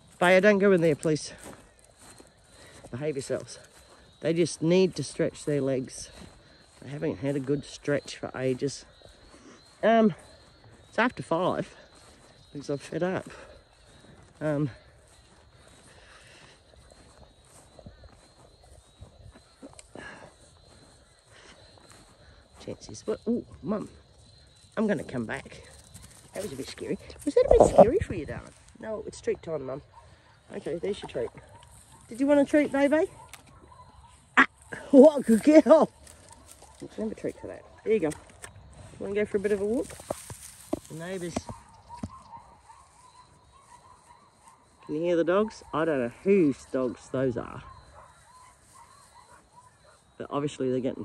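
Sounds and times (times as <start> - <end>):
distant dogs barking: 0.0 - 51.0
footsteps through dry grass: 0.0 - 51.0
grass rustle: 0.0 - 51.0.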